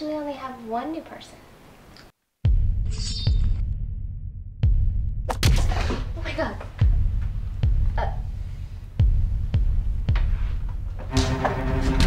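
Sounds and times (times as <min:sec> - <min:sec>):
deep heartbeat-like thuds: 0:02.5 - 0:02.9, 0:03.5 - 0:12.0.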